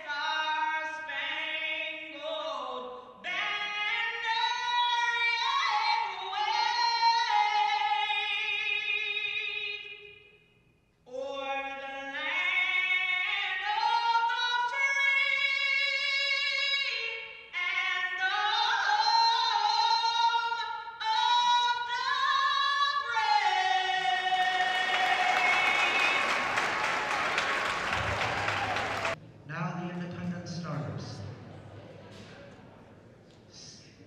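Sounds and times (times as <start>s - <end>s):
woman singing into a microphone: 0.0s - 10.0s, 11.1s - 26.1s
crowd cheering and applause: 23.5s - 29.2s.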